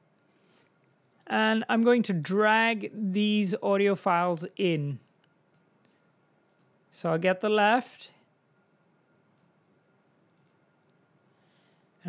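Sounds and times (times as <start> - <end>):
faint room hiss: 0.0 - 12.0
mouse clicks: 6.5 - 6.8, 10.3 - 10.6.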